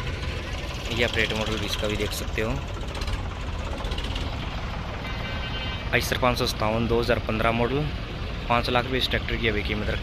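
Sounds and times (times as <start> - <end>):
tractor engine idling: 0.0 - 10.0.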